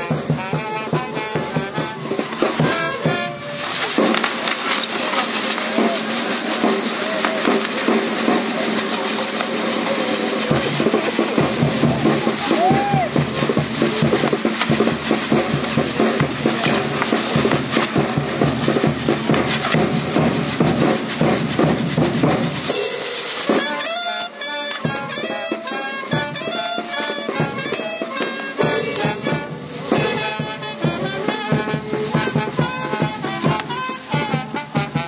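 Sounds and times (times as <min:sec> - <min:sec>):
fireworks crackling and popping: 0:00.0 - 0:35.0
music: 0:00.0 - 0:35.0
voices: 0:00.2 - 0:20.3, 0:24.8 - 0:34.7.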